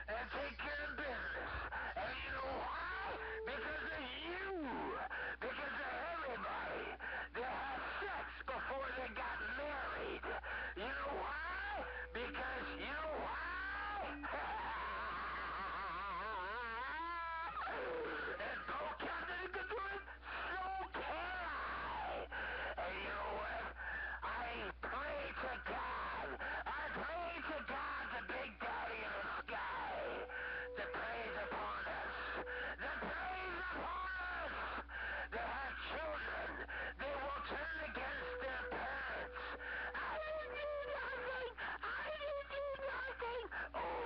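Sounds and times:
radio hum: 0:00.2 - 0:06.5, 0:07.8 - 0:14.3, 0:29.0 - 0:42.7
voice making yowling noises: 0:01.1 - 0:05.2, 0:10.8 - 0:18.8, 0:21.4 - 0:22.2, 0:29.1 - 0:34.8, 0:36.0 - 0:44.0
steady whistle tones: 0:30.2 - 0:32.8.

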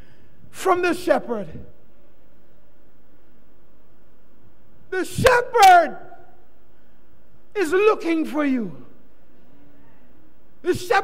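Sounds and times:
steady background hum: 0:00.0 - 0:11.0
man's voice: 0:00.5 - 0:01.7, 0:04.9 - 0:06.3, 0:07.5 - 0:08.9, 0:10.6 - 0:11.0.

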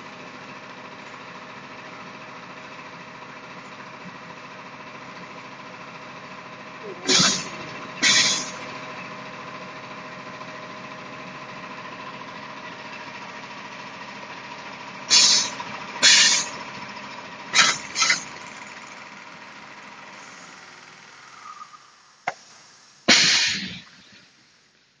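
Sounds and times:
packing machine humming: 0:00.0 - 0:21.4
compressed air hisses: 0:07.0 - 0:08.7, 0:15.1 - 0:16.6, 0:20.1 - 0:24.4.

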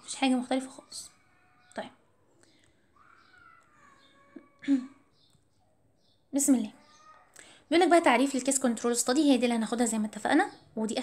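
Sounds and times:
faint drawn-out animal call: 0:02.9 - 0:05.2.

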